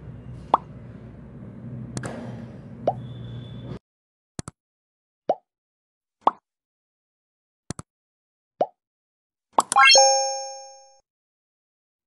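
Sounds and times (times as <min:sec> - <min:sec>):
bright chime: 0:09.8 - 0:10.9.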